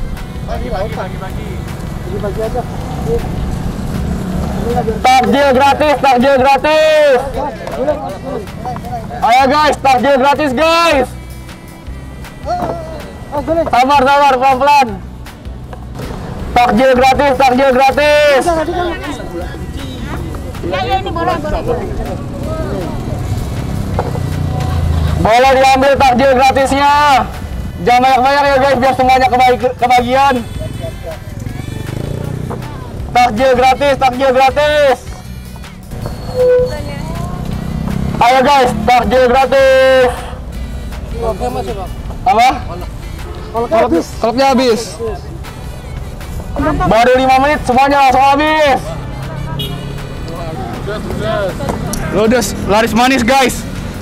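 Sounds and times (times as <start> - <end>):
motorbike engines idling: 0.0 - 54.0
faint voices: 16.5 - 53.8.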